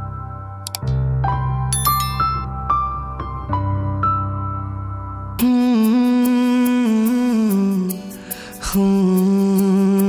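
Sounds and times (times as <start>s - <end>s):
soft backing music: 0.0s - 10.0s.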